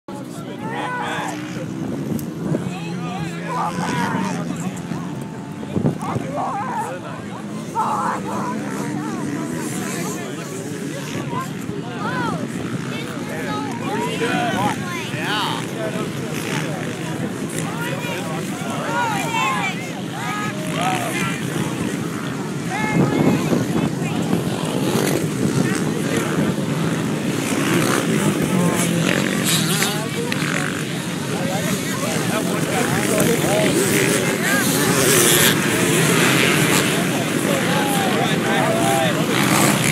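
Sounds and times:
motorcycle engines revving: 0:00.1 - 0:39.9
spectators shouting: 0:00.1 - 0:39.9.

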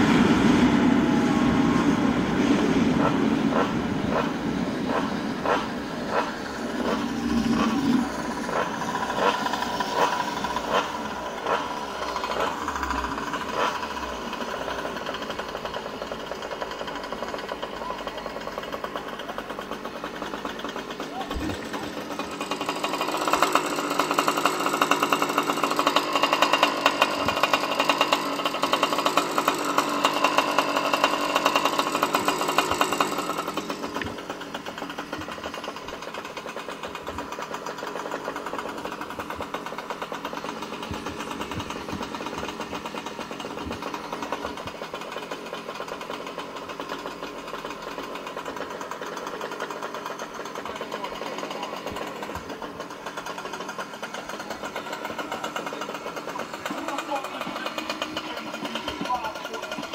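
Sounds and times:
small gasoline engine running: 0:00.0 - 0:59.9.

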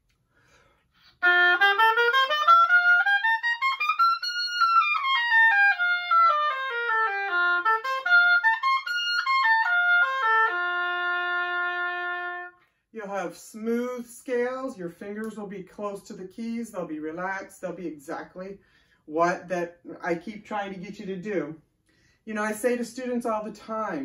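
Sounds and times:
oboe playing scales: 0:01.0 - 0:12.8.

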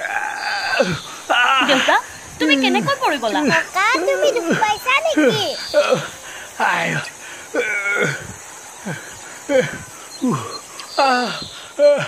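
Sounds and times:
man groaning in pain: 0:05.2 - 0:12.0.

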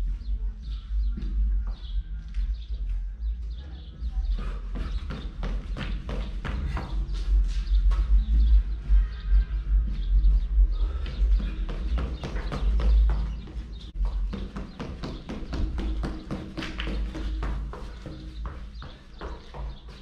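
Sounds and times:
sneaker footfalls on concrete: 0:04.4 - 0:08.4, 0:09.8 - 0:20.0
low rumble: 0:06.4 - 0:14.3.

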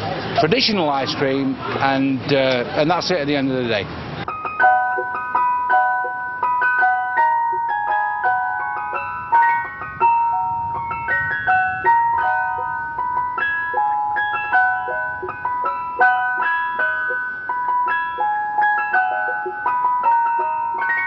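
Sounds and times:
ice cream van chime: 0:04.1 - 0:21.0.

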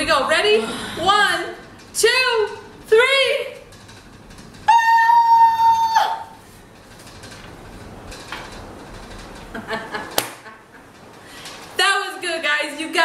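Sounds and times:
woman shrieking: 0:04.7 - 0:06.4.

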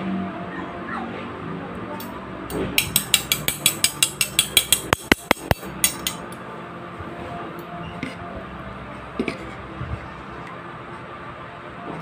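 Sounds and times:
metal utensils clinking: 0:02.0 - 0:06.4.

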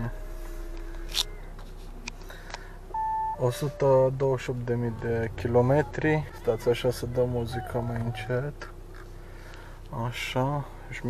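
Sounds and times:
dashboard chime beep: 0:02.9 - 0:04.2
person speaking: 0:03.3 - 0:08.3.

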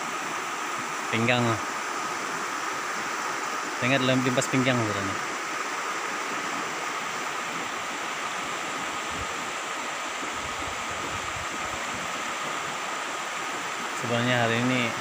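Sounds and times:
floodwater rushing: 0:00.0 - 0:15.0.

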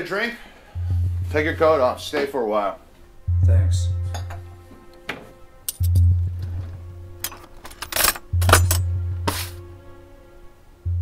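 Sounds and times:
deep sustained bass notes: 0:00.7 - 0:02.2, 0:03.1 - 0:04.7, 0:05.8 - 0:07.3, 0:08.3 - 0:09.9
glass clinks: 0:04.1 - 0:04.4
glass handling noises: 0:04.1 - 0:09.5.

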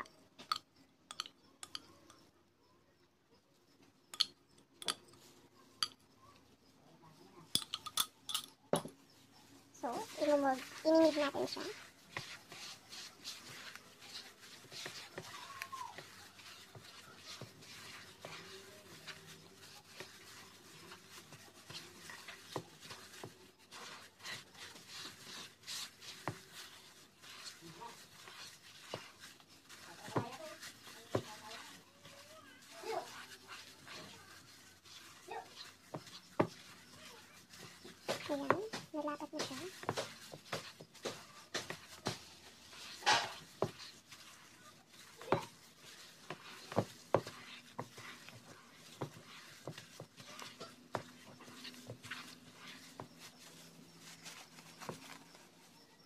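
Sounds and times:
clicks and knocks against bowl: 0:00.0 - 0:02.3, 0:04.1 - 0:05.2, 0:05.8 - 0:06.1, 0:07.5 - 0:09.0
plastic glove rubbing and crinkling: 0:09.0 - 0:56.0.

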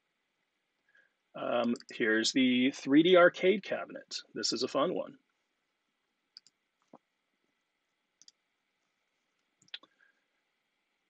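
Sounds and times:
faint sharp clicks: 0:06.4 - 0:07.0, 0:08.2 - 0:08.4.

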